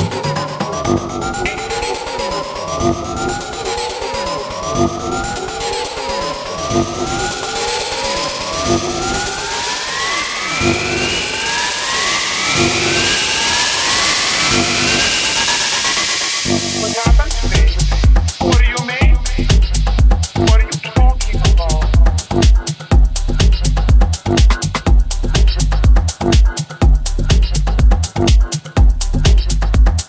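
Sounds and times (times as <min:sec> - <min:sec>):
rising synth sweeps: 0:00.0 - 0:17.9
pulsing house beat: 0:00.0 - 0:30.0.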